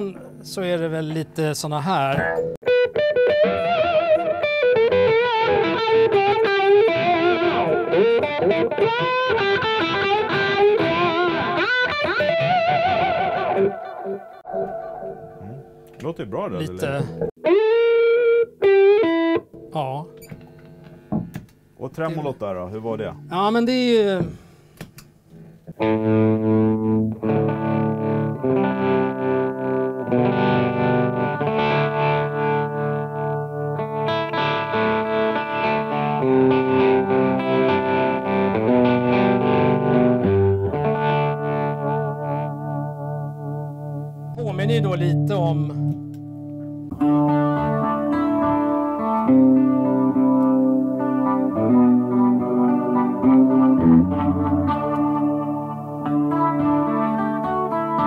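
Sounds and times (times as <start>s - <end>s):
electric guitar with tremolo: 2.2s - 16.0s, 17.0s - 21.5s, 25.3s - 58.0s.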